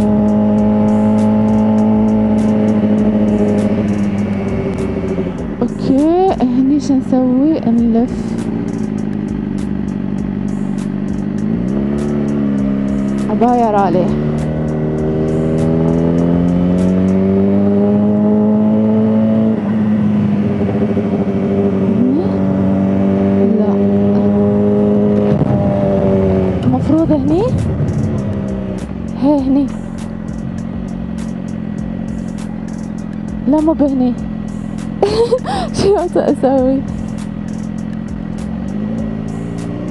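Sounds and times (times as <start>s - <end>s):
motorcycle engine running: 0.0s - 39.9s.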